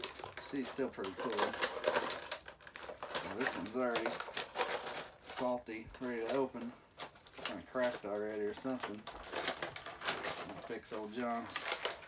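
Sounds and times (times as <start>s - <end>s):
plastic packaging crackling: 0.0s - 12.0s.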